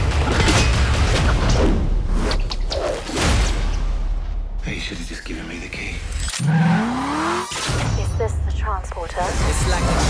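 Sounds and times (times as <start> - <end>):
car engine revving: 6.3 - 8.0.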